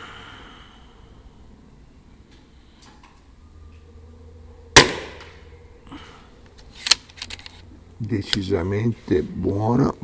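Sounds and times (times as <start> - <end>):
air rifle shot: 4.8 - 5.4
rifle action clicks: 6.5 - 7.6.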